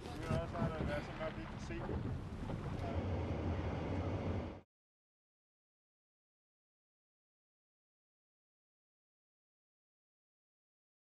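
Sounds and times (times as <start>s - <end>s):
voices: 0.0s - 2.0s, 2.6s - 4.4s
wind buffeting microphone: 0.0s - 4.6s
boat engine: 0.0s - 4.7s.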